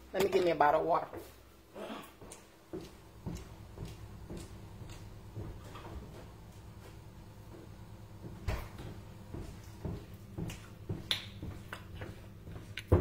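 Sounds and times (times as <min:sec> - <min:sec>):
footsteps on hard floor: 0:02.2 - 0:13.0.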